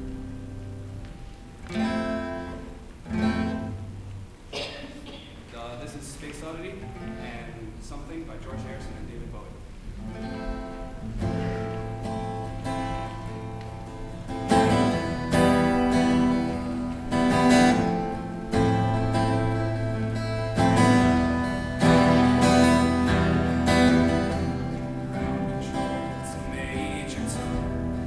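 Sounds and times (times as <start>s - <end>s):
acoustic guitars strumming: 0.0s - 28.0s.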